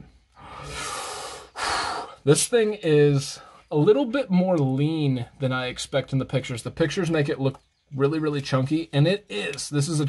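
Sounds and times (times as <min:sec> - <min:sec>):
man breathing heavily: 0:00.1 - 0:02.2.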